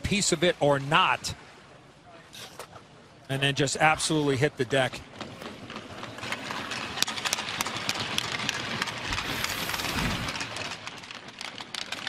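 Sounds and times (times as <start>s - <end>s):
arena background noise: 0.0s - 12.0s
sticks and skates on ice: 4.4s - 12.0s
low rumble: 9.1s - 10.6s.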